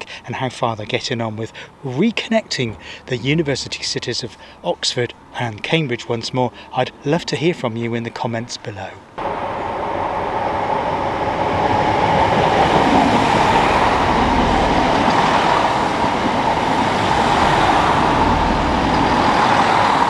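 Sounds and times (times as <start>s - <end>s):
diesel train passing: 9.2s - 20.0s.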